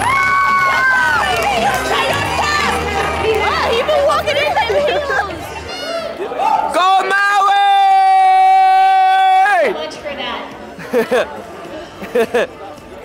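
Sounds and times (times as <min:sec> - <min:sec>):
crowd voices and shouts: 0:00.0 - 0:13.0.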